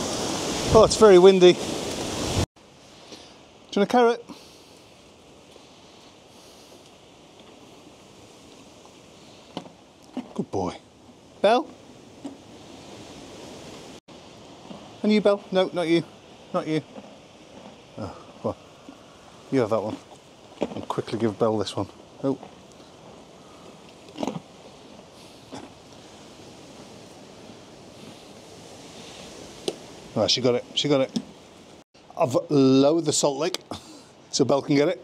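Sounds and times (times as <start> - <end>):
wind blowing: 0.0 - 35.0.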